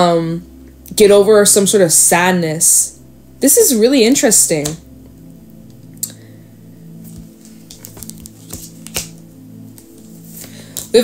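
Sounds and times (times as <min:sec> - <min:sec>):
low background music: 0:00.0 - 0:11.0
cards clicking and tapping on table: 0:07.2 - 0:09.2, 0:09.8 - 0:10.9.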